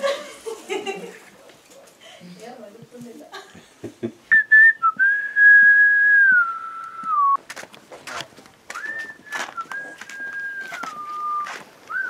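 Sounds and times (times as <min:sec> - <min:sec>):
person whistling: 0:04.3 - 0:07.4, 0:08.7 - 0:12.0.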